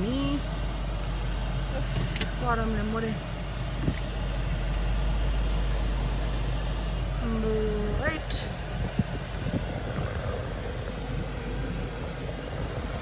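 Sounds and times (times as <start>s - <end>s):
car interior rumble: 0.0s - 13.0s.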